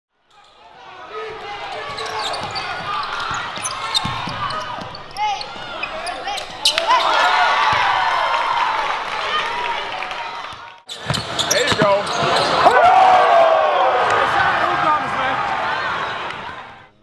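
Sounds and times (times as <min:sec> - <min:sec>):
sneaker squeaks: 0:01.4 - 0:07.2, 0:10.9 - 0:12.7.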